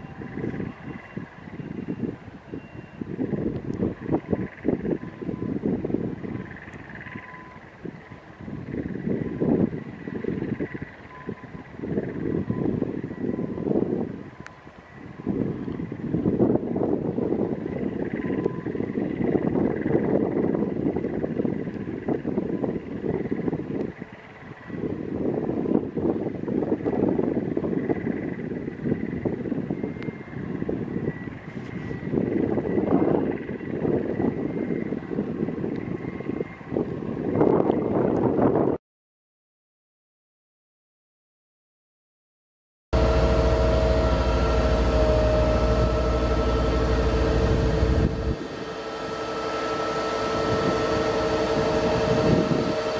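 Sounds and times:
faint steady high whine: 0.0 - 38.7, 43.0 - 52.9
gusty wind buffeting microphone: 0.0 - 38.8, 43.0 - 52.9.

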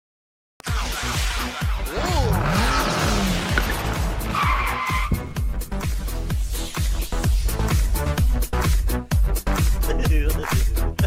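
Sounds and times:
electronic music with beat: 0.6 - 11.0.

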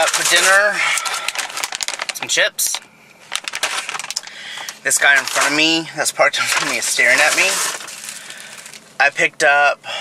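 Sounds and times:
chip bag crinkling: 0.0 - 8.9.

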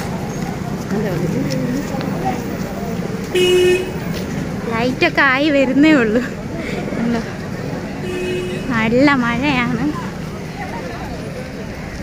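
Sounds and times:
background chatter: 0.0 - 12.0
vehicle horn honk: 3.4 - 4.0, 8.0 - 8.7.

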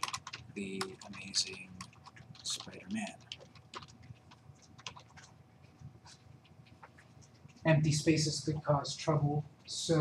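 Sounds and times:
keyboard typing clicks: 0.0 - 5.4.

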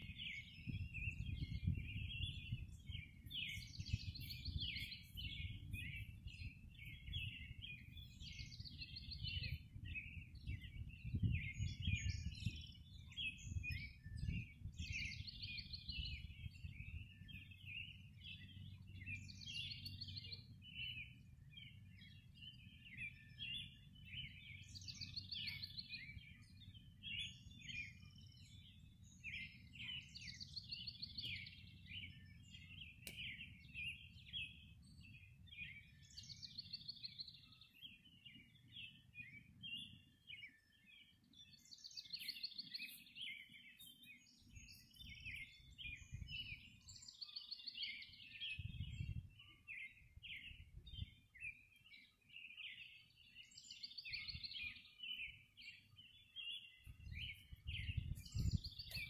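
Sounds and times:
bird trilled song: 0.0 - 59.0
songbirds chirping: 0.0 - 59.0.

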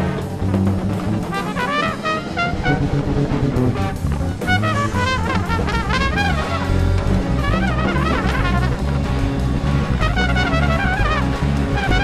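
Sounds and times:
bass: 0.0 - 12.0
drum kit with timbales: 0.0 - 12.0
electric guitar: 0.0 - 12.0
trumpet playing short notes: 1.3 - 3.0, 3.6 - 9.0, 9.9 - 12.0.

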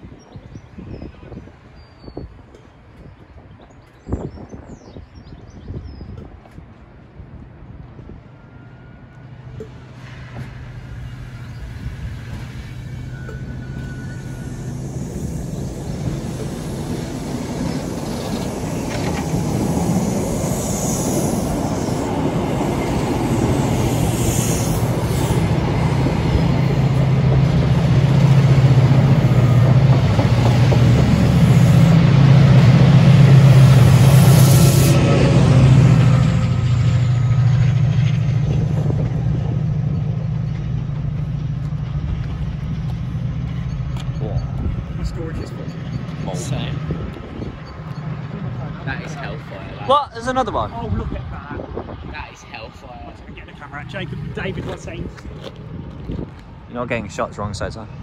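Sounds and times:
train wheels on rails: 6.2 - 58.0
diesel engine drone: 8.4 - 58.0.

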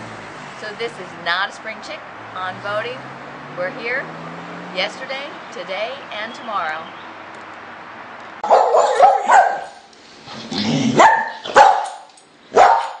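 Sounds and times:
dog barking: 8.4 - 9.9, 11.0 - 13.0.

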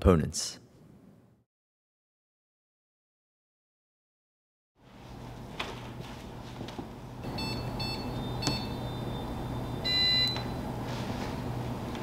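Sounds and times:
low steady hum: 4.8 - 12.0.

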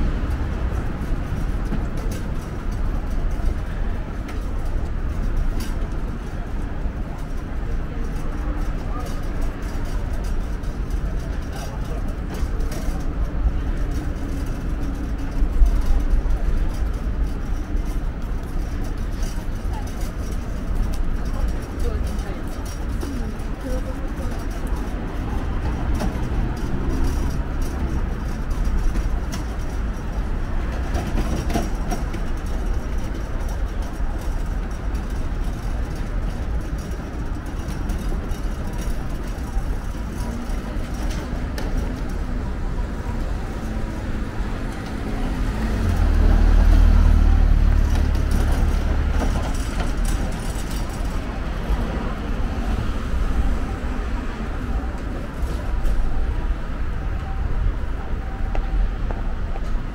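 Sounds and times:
faint voices: 0.0 - 59.9
low traffic rumble: 0.0 - 59.9.

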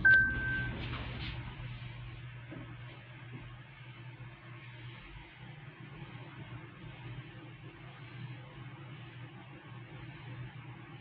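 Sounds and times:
elevator door-close beep: 0.0 - 0.8.

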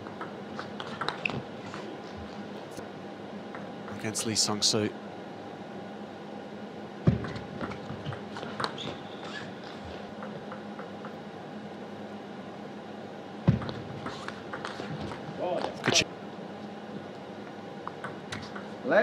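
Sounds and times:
arena hum: 0.0 - 19.0.

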